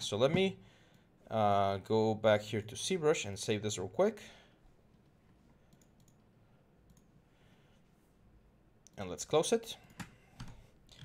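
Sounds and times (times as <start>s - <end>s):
computer mouse clicks: 5.7s - 6.2s, 6.8s - 7.1s.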